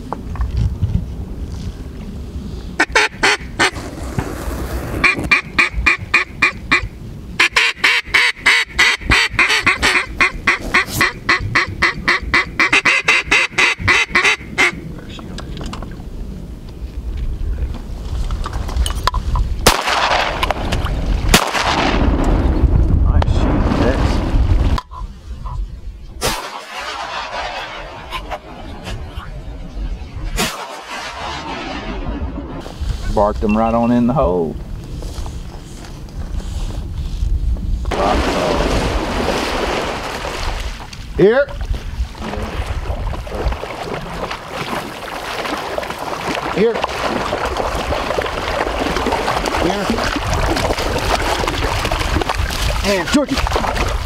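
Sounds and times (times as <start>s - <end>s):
duck call quacks: 2.8s - 3.8s, 5.0s - 14.8s
sharp cracks: 19.6s - 22.4s, 26.2s - 29.0s, 30.1s - 32.8s
rush of noise: 22.5s - 33.6s.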